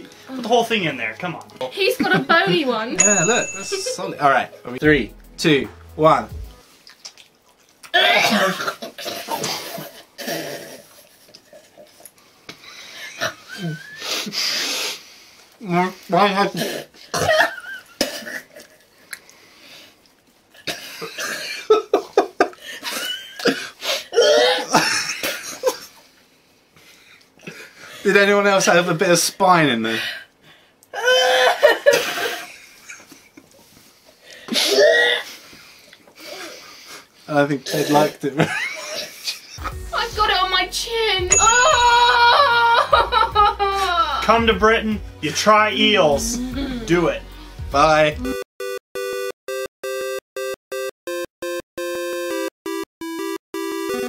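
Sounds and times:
people coughing: 8.0 - 10.5, 16.6 - 18.5
people laughing: 41.7 - 44.5.

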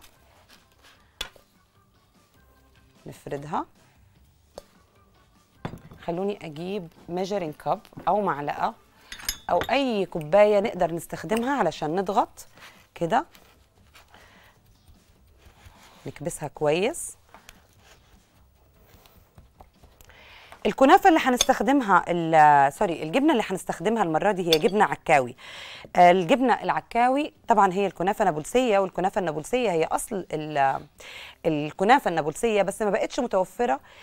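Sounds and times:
dough spread onto metal pan: 0.0 - 1.6, 11.2 - 19.3
soft rubbing and handling: 0.0 - 1.6, 11.8 - 20.0.

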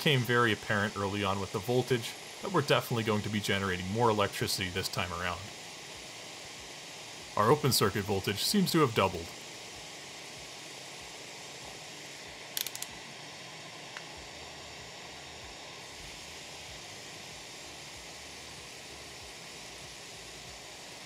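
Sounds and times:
steam hissing through turbine: 0.0 - 21.0
clicks: 12.6 - 12.9.

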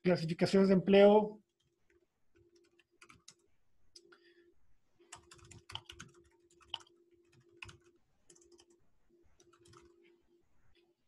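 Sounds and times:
computer keyboard typing: 1.5 - 4.1, 5.1 - 8.8, 9.4 - 10.0.

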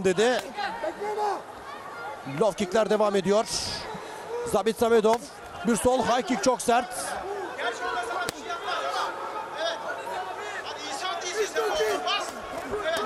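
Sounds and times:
shouted voices: 0.0 - 4.6, 5.6 - 13.0
arena crowd chatter: 0.0 - 13.0.

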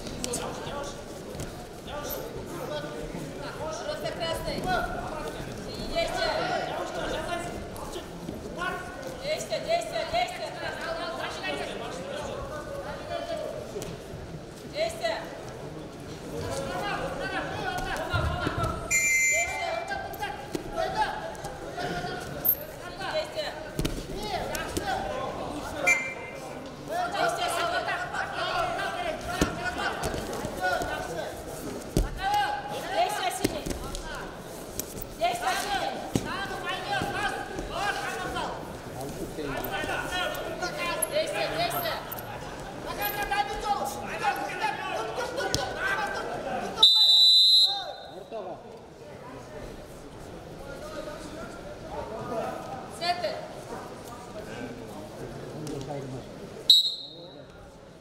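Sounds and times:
voices calling out in a hall: 0.0 - 58.0
referee's whistle blast: 18.9 - 19.8, 25.8 - 26.4, 46.8 - 48.1, 56.7 - 57.3.

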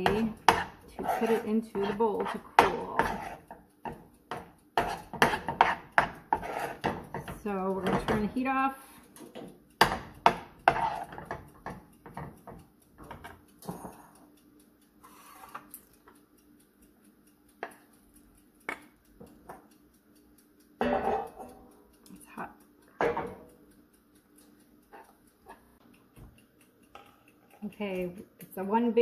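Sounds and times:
metal spoon scraping saucepan: 0.0 - 3.5, 4.8 - 8.3, 10.7 - 11.4, 15.1 - 15.7, 20.8 - 21.5.

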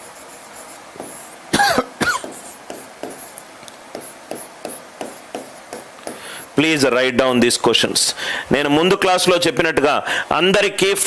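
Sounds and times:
man coughing: 1.5 - 2.4.

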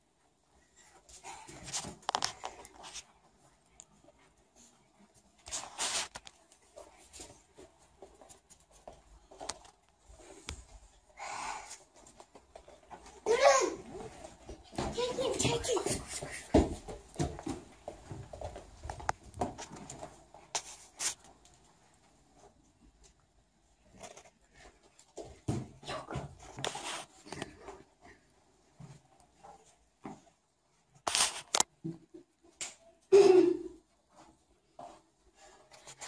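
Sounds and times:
footsteps in house: 0.0 - 33.0, 33.8 - 36.0.

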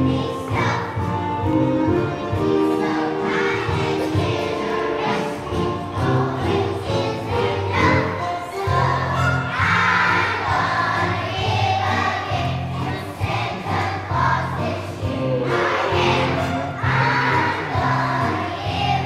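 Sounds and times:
children's choir singing: 0.0 - 19.0
instrumental accompaniment with bass: 0.0 - 19.0.

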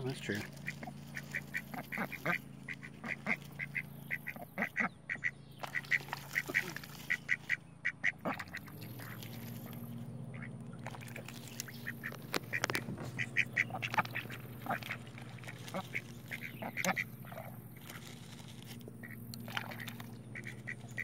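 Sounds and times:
ducks quacking: 0.0 - 21.0
steady low hum: 0.0 - 21.0.

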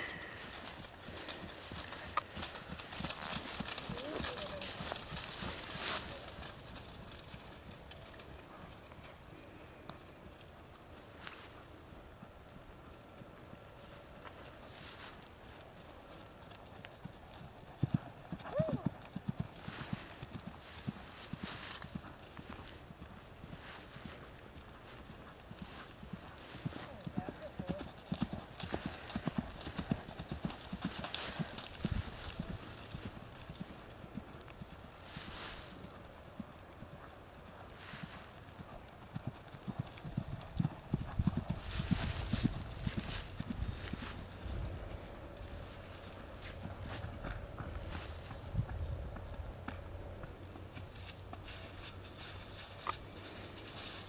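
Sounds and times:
horse hoofbeats on grass: 0.0 - 12.3, 13.2 - 54.0.

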